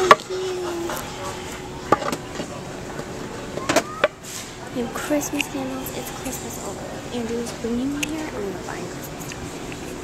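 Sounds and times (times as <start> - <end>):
store background noise: 0.0 - 10.0.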